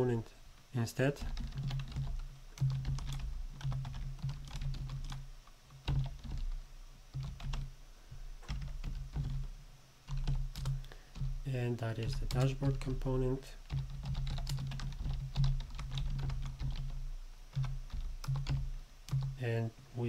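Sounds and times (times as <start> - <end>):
keyboard typing: 1.2 - 5.2, 5.8 - 7.7, 8.4 - 9.5, 10.1 - 11.4, 12.0 - 19.4.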